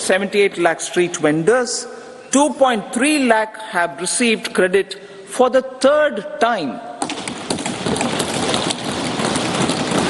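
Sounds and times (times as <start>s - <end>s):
people thumping desks in applause: 7.0s - 10.0s.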